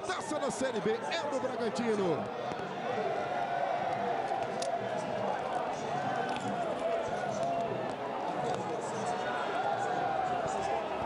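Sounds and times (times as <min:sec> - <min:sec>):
crowd background: 0:00.0 - 0:11.0.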